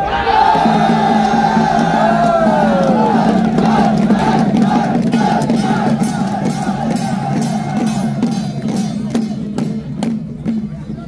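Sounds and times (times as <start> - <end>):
crowd noise: 0.0 - 11.0
handheld percussion strikes: 0.6 - 10.7.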